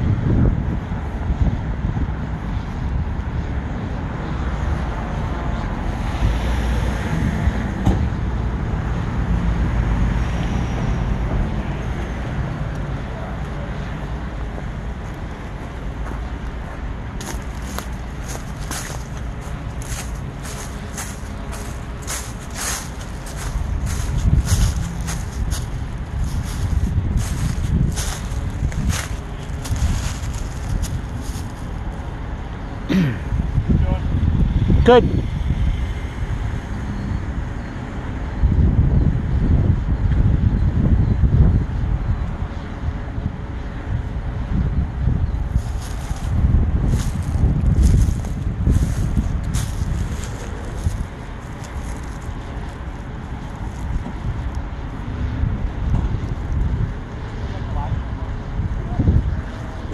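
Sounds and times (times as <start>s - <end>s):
distant traffic: 0.0s - 59.9s
wind buffeting microphone: 0.0s - 59.9s
footsteps crunching on dry grass: 15.0s - 32.0s, 45.5s - 54.6s.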